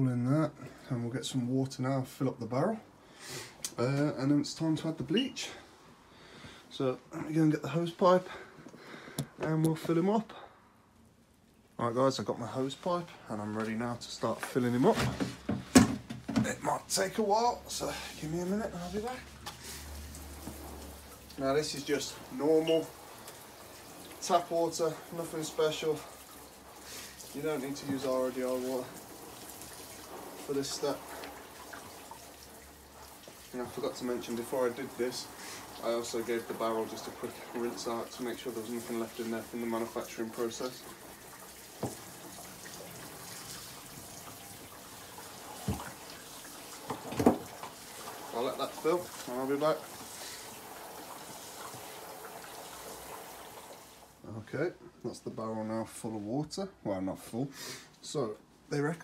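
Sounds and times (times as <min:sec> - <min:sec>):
hose spraying water into barrel: 0:16.4 - 0:54.3.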